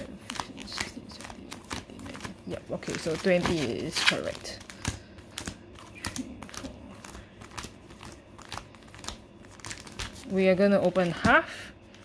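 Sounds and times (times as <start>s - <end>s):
foil wrappers crinkling: 0.0s - 12.0s.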